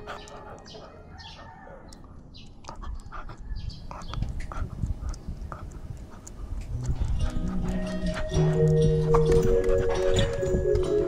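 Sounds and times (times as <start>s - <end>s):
dog breathy puffs: 2.6s - 8.5s.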